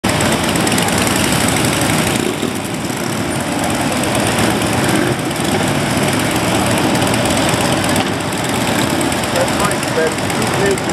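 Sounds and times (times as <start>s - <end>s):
many motorcycle engines: 0.0s - 10.9s.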